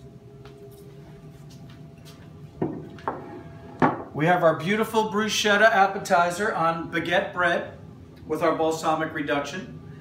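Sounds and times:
faint steady hum: 0.0 - 10.0
plates knocking on wooden table: 2.6 - 4.1.

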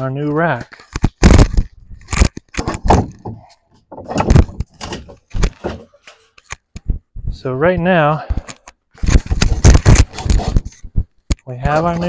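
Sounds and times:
barbed wire knocks and clanks: 2.1 - 6.3.

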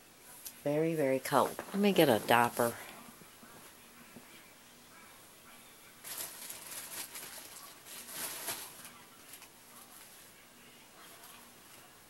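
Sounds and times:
diaper packaging crinkling: 6.0 - 10.2.

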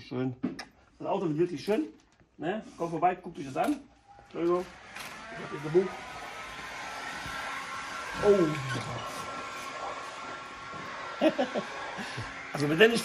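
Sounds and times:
voices: 3.4 - 13.0
electric motor whine: 4.3 - 13.0.

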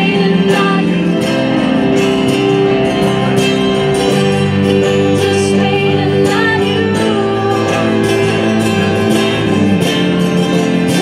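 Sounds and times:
acoustic band playing: 0.0 - 11.0.

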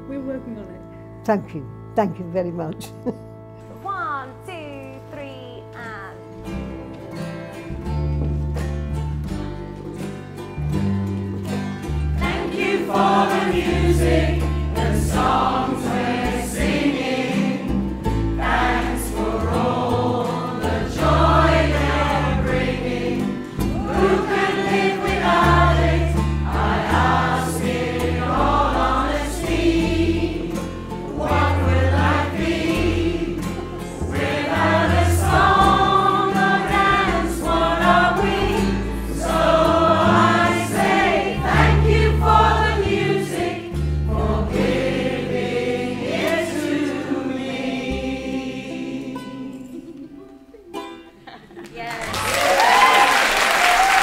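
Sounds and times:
instrumental accompaniment: 0.0 - 51.6
choir singing: 12.1 - 50.9.

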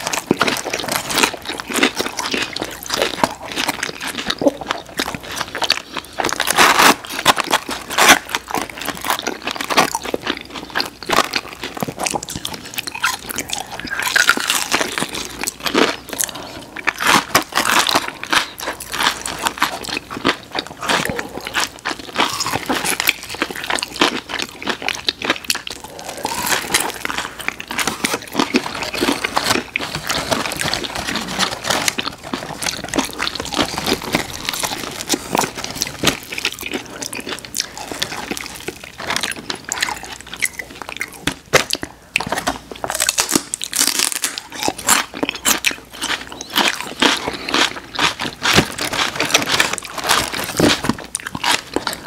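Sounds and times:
crisp crunches of chewing fried chicken: 0.0 - 52.0.

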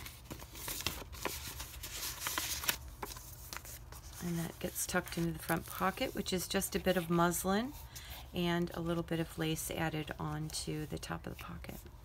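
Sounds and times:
paper rustling: 0.0 - 8.2.

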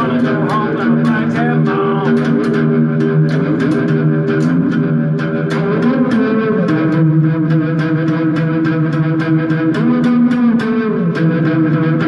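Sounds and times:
slide blues on one-string instrument: 0.0 - 12.0.

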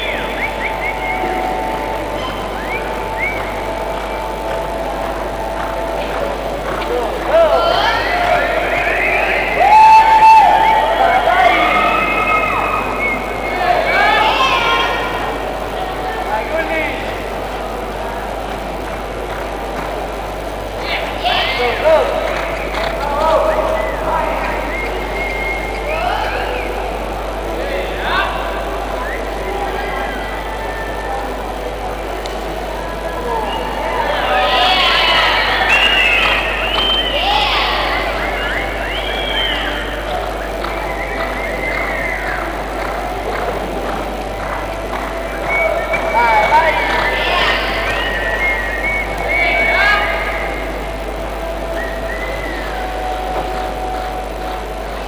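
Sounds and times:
voices talking: 0.0 - 55.0.

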